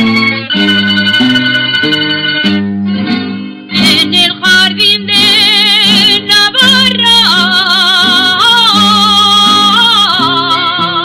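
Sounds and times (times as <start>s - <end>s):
guitar accompaniment: 0.0s - 11.0s
women singing with vibrato: 3.8s - 11.0s.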